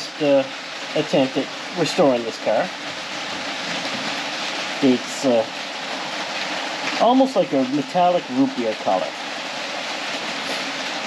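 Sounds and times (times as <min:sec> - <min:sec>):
rain on a roof: 0:00.0 - 0:11.0.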